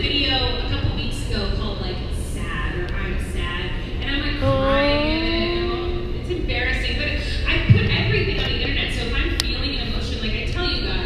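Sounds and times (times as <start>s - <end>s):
low hall background noise: 0.0s - 11.0s
voice over loudspeakers: 4.3s - 6.0s.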